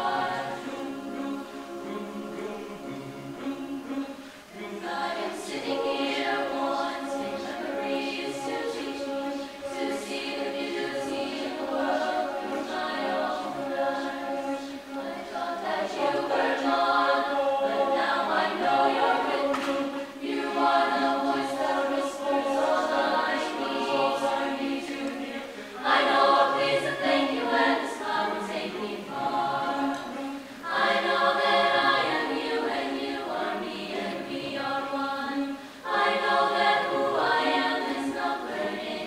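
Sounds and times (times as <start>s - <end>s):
choir singing a cappella: 0.0s - 39.0s.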